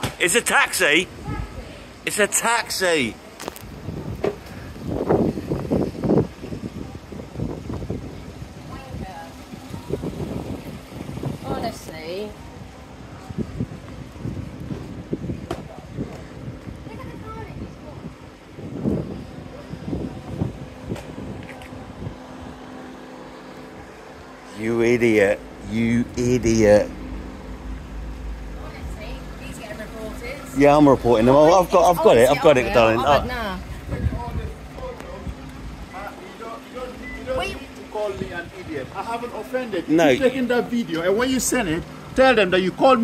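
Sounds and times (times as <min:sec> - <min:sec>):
indistinct distant voices: 0:00.0 - 0:43.0
outdoor street noise: 0:00.0 - 0:43.0
wind gusting on microphone: 0:03.6 - 0:35.9.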